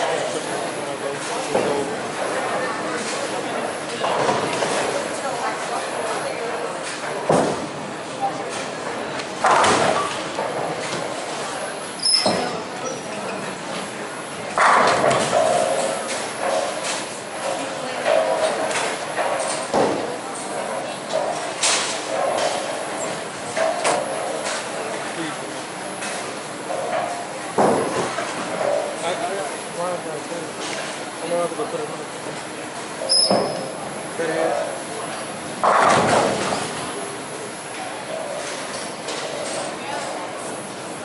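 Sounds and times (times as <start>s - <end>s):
bowling balls crashing into pins: 35.6s - 36.8s.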